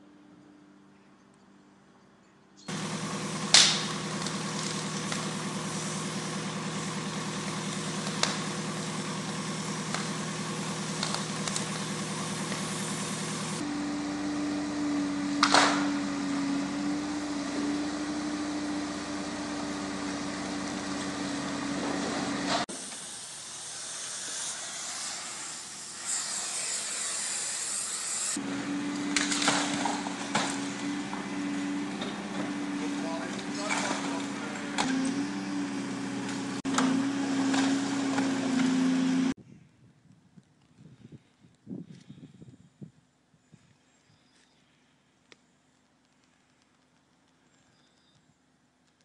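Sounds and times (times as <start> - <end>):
excavator diesel engine running: 2.7 - 23.8, 28.4 - 39.4
debris breaking impacts: 29.0 - 31.4.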